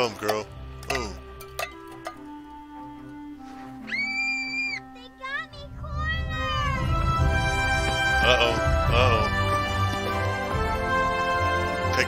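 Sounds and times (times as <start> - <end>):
background film music: 0.0 - 12.0
high squeal-like calls: 3.8 - 4.9.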